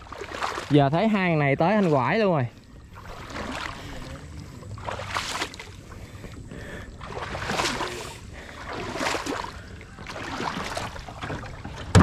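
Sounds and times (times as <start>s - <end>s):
wading through muddy water: 0.0s - 12.0s.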